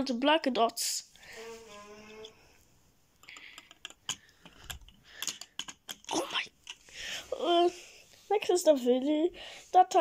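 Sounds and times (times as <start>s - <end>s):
plastic pieces clicking: 3.2s - 6.8s.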